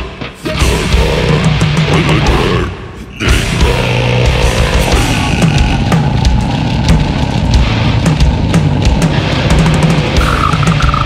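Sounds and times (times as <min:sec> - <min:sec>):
distorted guitars and bass: 0:00.0 - 0:11.0
fast drumming: 0:03.2 - 0:11.0.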